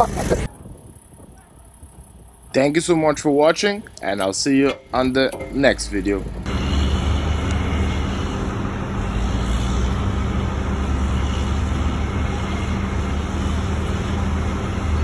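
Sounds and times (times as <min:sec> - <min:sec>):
diesel engine droning: 0:00.0 - 0:15.0.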